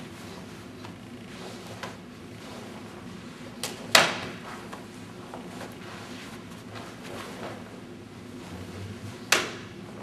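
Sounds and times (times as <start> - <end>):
sharp slaps of strikes: 9.3 - 9.7.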